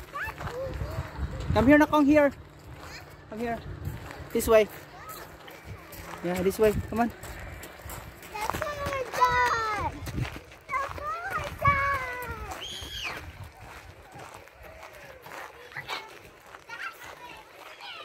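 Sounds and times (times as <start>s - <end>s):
children playing and shouting: 0.0s - 18.0s
child squealing: 12.6s - 13.2s.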